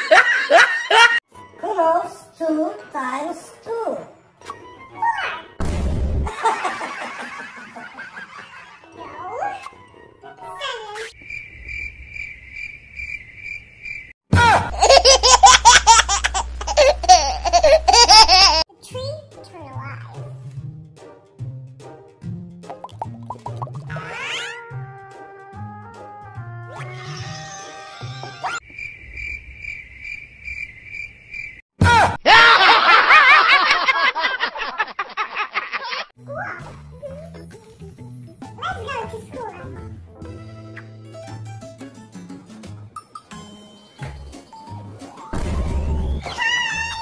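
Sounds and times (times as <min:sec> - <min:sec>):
loud laughter: 0:00.0 - 0:01.2, 0:06.3 - 0:08.9, 0:31.9 - 0:36.1
sudden loud burst: 0:05.6 - 0:06.4, 0:45.4 - 0:46.2
cricket chirping: 0:11.2 - 0:14.2, 0:28.6 - 0:31.6.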